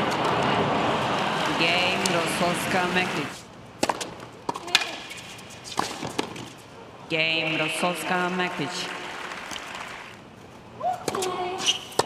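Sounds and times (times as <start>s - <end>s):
tennis ball bouncing on court: 3.8s - 5.1s, 5.7s - 6.6s, 11.0s - 12.0s
tennis ball struck by racquets: 3.8s - 5.1s, 11.0s - 12.0s.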